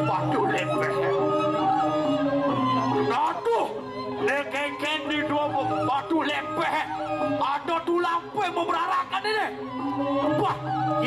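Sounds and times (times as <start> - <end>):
person singing wavering: 0.0 - 11.0.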